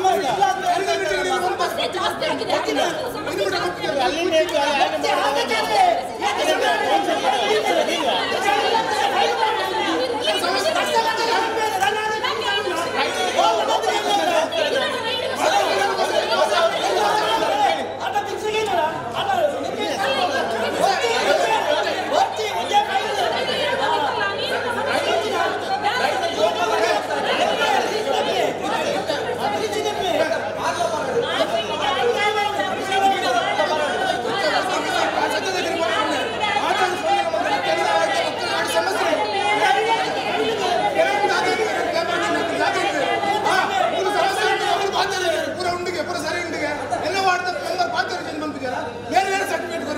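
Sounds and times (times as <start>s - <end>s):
men arguing: 0.0s - 49.9s.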